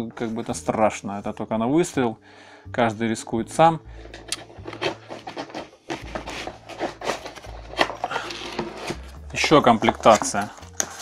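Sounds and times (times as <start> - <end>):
wooden case lid closing: 4.2 - 11.0.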